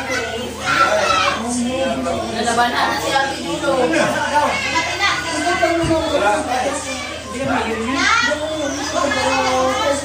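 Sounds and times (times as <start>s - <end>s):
adults and children talking: 0.0s - 10.0s.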